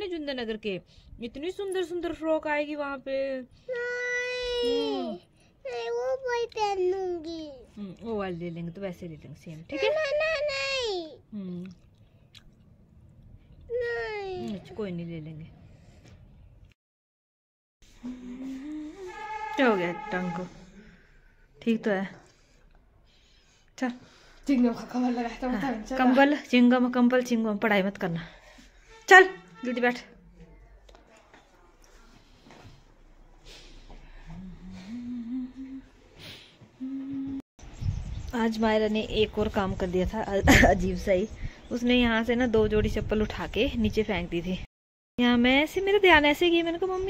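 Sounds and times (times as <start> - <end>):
person humming: 18.0 - 19.1, 34.4 - 36.0, 36.8 - 37.4.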